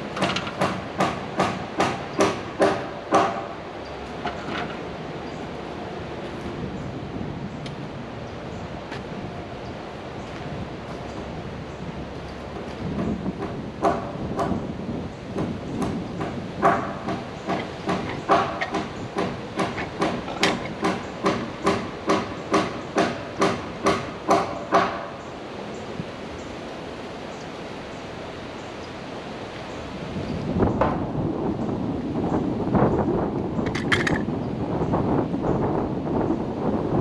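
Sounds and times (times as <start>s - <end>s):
wind noise on microphone: 3.9s - 24.4s, 29.4s - 37.0s
hammer driving nails into wood: 15.8s - 25.0s.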